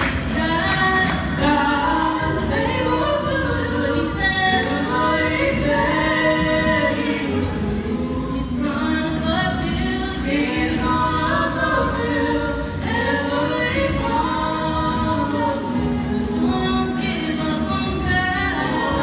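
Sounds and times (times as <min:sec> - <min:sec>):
female vocal trio singing gospel: 0:00.0 - 0:19.0.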